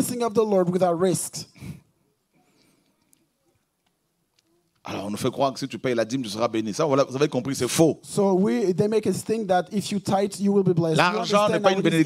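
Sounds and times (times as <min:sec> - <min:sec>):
man speaking: 0:00.0 - 0:01.5, 0:04.9 - 0:12.0.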